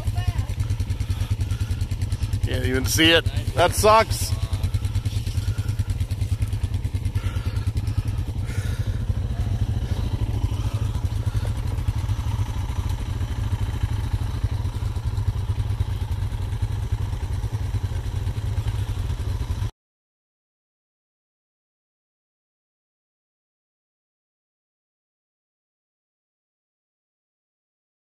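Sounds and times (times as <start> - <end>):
atv engine running: 0.0 - 19.7.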